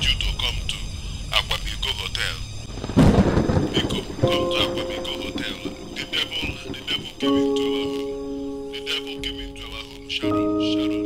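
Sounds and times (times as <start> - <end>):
thunderclap crash: 2.6 - 9.8.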